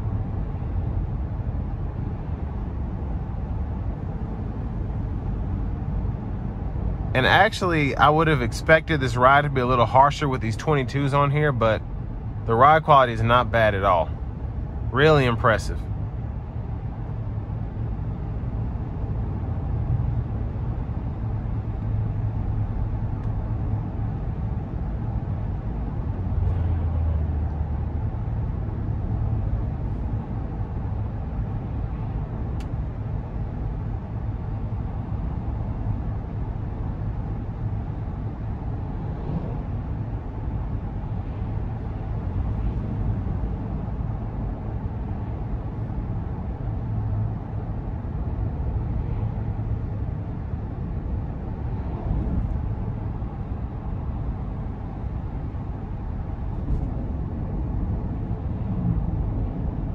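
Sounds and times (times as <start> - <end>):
car engine hum: 0.0 - 59.9
tyre and road noise: 0.0 - 59.9.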